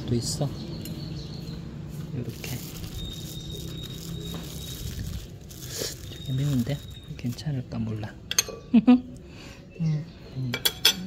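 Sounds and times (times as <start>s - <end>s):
plastic bag crinkling: 2.3s - 7.5s.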